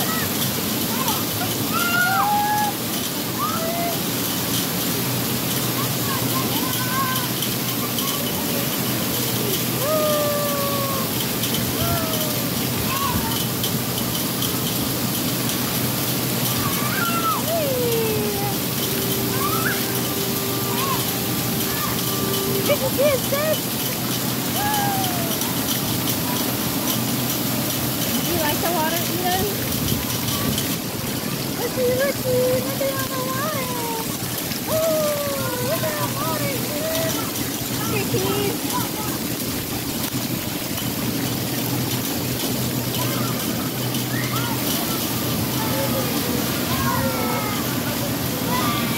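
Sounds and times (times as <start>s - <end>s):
water pouring and splashing: 0.0s - 48.9s
low hum: 14.0s - 28.1s
faint distant calls: 16.5s - 28.6s.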